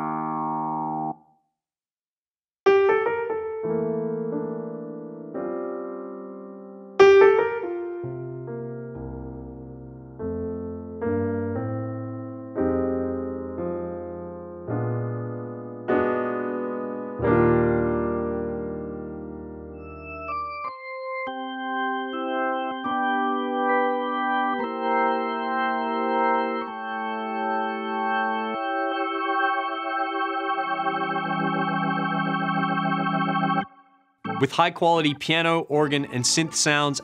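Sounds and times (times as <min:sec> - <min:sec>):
sustained keyboard chord: 0:02.7 - 0:37.0.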